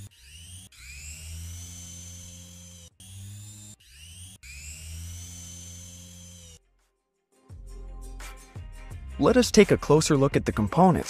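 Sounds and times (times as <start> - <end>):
centrifuge motor whine: 0.0 - 6.6.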